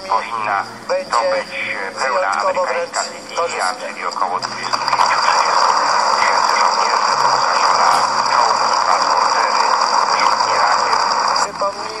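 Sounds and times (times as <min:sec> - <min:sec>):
faint voice on radio: 0:00.0 - 0:12.0
radio static: 0:00.0 - 0:12.0.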